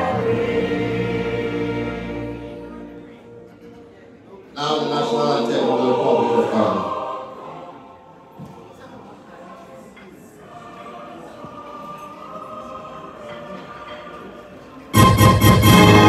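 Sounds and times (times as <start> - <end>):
choir singing with orchestra: 0.0 - 3.4, 4.6 - 8.8, 10.3 - 16.0
quiet orchestral music: 0.0 - 7.6, 11.8 - 16.0.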